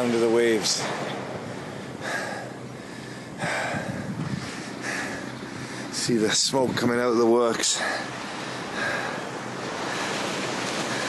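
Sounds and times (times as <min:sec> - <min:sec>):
sea waves: 0:00.0 - 0:11.0
wind buffeting microphone: 0:00.0 - 0:11.0.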